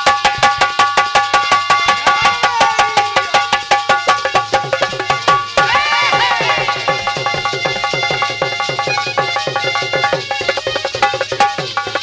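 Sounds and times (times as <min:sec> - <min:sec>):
hand drum fast rhythm: 0:00.0 - 0:12.0
held melody notes: 0:01.2 - 0:10.8.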